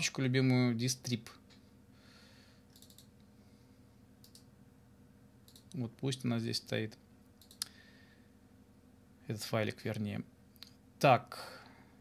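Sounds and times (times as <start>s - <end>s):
low steady hum: 0.0s - 12.0s
computer mouse clicks: 2.7s - 3.3s, 4.2s - 4.5s, 5.4s - 5.8s, 7.4s - 7.8s.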